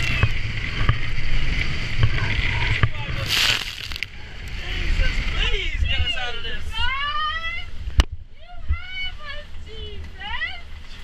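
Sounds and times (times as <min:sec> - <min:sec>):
wind and water rumbling: 0:00.0 - 0:11.0.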